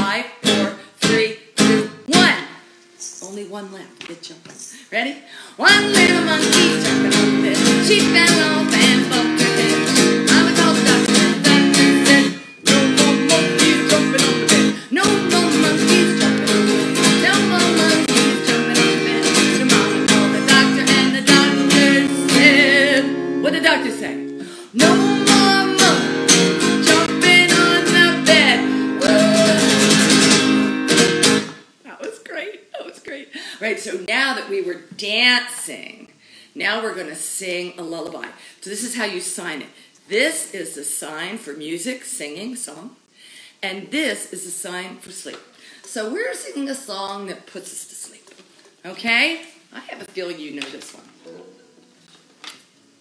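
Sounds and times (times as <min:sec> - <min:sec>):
woman singing: 0:00.0 - 0:02.6, 0:05.5 - 0:30.3
acoustic guitar strumming: 0:00.0 - 0:03.0, 0:05.6 - 0:31.8, 0:51.2 - 0:53.0.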